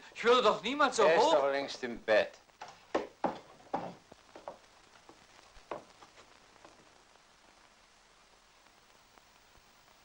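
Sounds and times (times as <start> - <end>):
steady hiss: 0.0 - 10.0.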